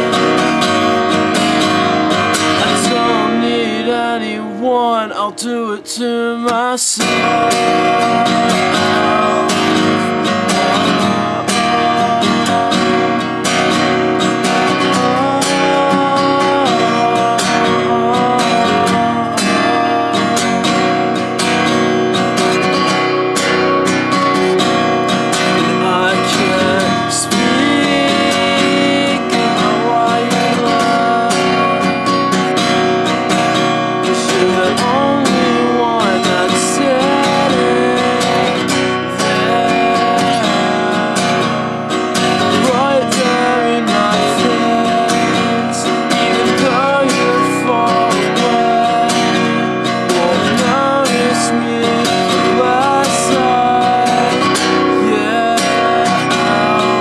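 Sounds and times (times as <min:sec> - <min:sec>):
acoustic guitar strummed and picked: 0:00.0 - 0:57.0
person singing: 0:00.0 - 0:57.0.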